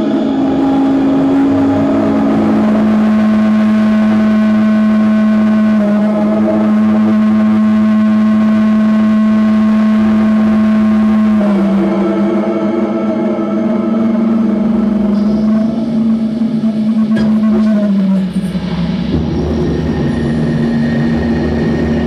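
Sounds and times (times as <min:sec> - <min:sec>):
low electronic drone: 0:00.0 - 0:22.0.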